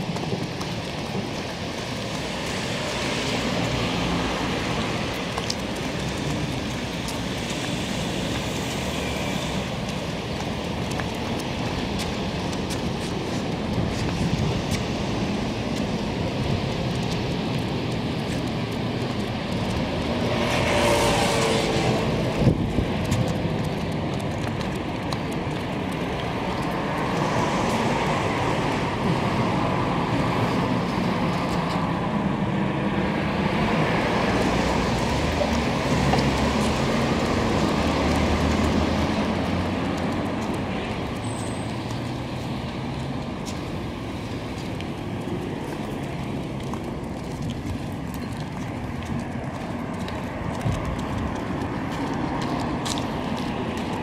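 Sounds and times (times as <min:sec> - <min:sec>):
road noise: 0:00.0 - 0:54.0
vehicle passing: 0:20.0 - 0:22.9.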